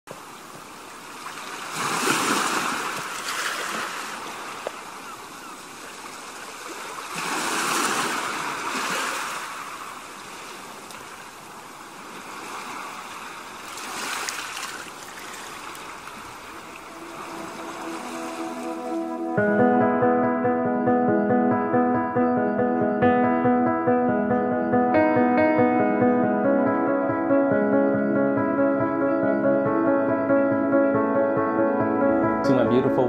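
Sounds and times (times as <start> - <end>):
waves washing against rocks: 1.2 - 4.6, 6.3 - 10.6, 12.0 - 18.5
music: 16.7 - 33.0.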